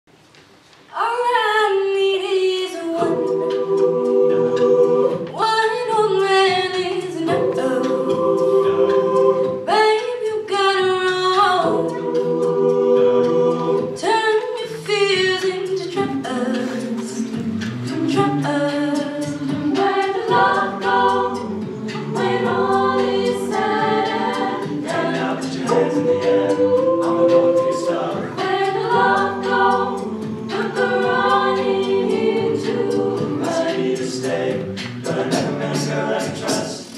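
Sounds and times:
a cappella group singing: 1.0s - 36.9s.

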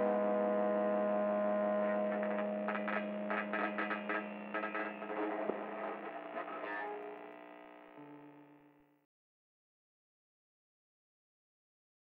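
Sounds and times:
humming drone of held tones: 0.0s - 8.9s.

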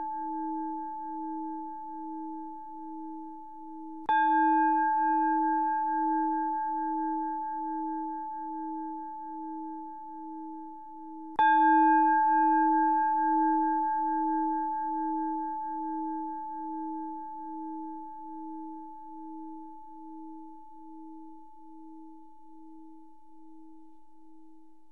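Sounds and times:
bowl bell ringing: 0.0s - 23.9s.

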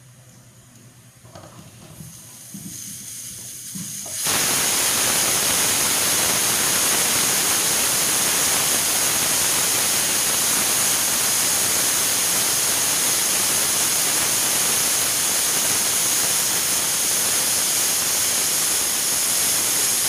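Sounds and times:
pressure cooker steam hiss: 2.0s - 20.0s.

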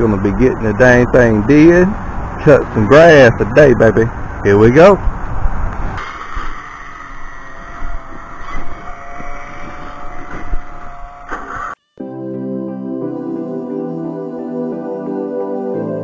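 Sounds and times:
soft new-age background music: 12.0s - 16.0s.

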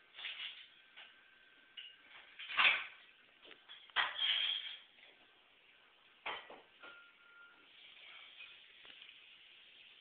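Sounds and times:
low hiss: 4.5s - 10.0s
soft short tone: 6.9s - 7.7s.

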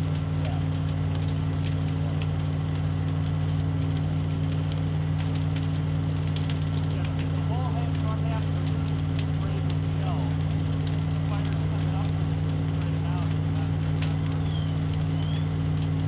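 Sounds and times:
burning wooden building crackling: 0.0s - 16.0s
low engine hum: 0.0s - 16.0s.

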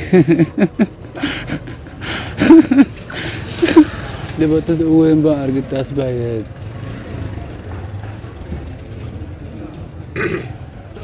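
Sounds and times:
street background hum: 0.0s - 11.0s.

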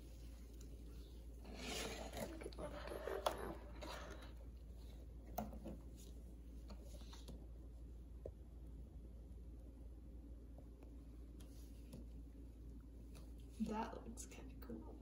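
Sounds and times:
cardboard rustling and scraping: 1.4s - 4.4s.

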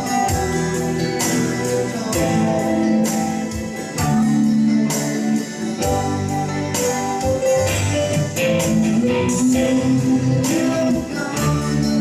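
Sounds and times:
man singing into microphone: 0.0s - 6.2s, 8.4s - 12.0s
guitar-led worship music: 0.0s - 12.0s.

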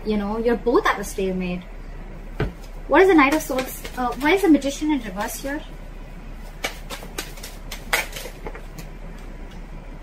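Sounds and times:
cards shuffling clicks: 6.5s - 9.0s.

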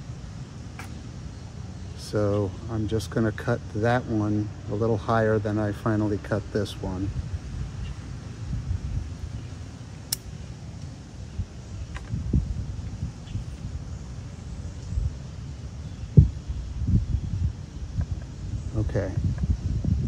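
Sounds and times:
wind rumble on microphone: 2.0s - 20.0s
scissors snipping branch: 10.1s - 10.3s.

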